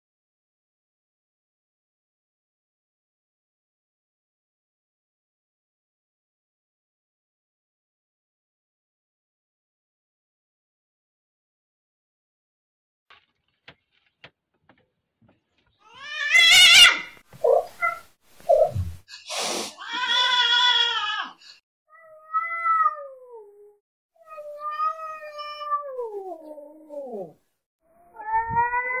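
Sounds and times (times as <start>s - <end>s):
cat yowling and meowing: 15.9s - 18.0s, 19.8s - 29.0s.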